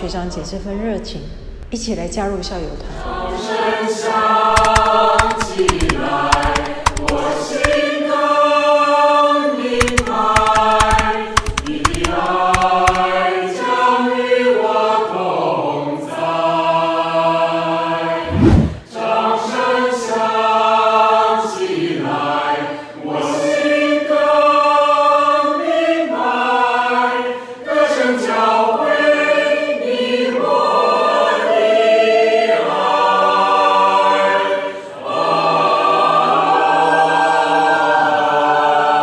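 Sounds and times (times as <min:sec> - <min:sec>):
mixed choir singing in harmony: 0:02.9 - 0:39.0.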